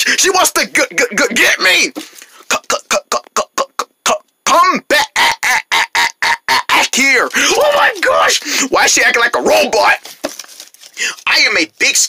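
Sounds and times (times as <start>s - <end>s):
person imitating a robot voice: 2.5s - 9.2s.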